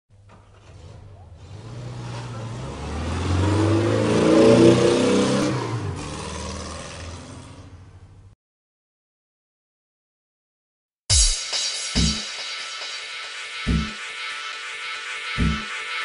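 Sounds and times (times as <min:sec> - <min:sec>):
car engine passing by: 0:00.5 - 0:08.0.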